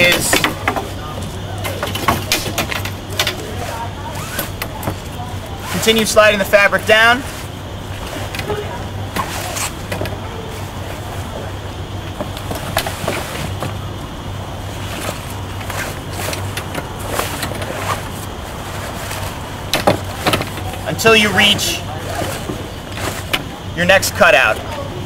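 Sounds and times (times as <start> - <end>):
steady low hum: 0.0 - 25.0
fabric rustling and crinkling: 14.5 - 23.6.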